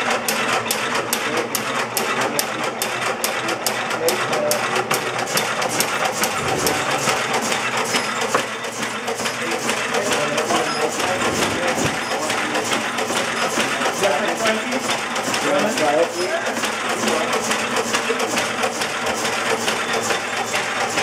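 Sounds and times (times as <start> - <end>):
machine gears clattering: 0.0 - 21.0.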